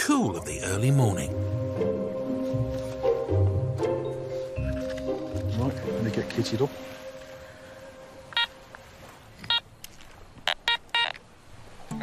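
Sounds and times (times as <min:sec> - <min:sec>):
metal detector beeps: 0:08.3 - 0:08.5, 0:10.5 - 0:11.2.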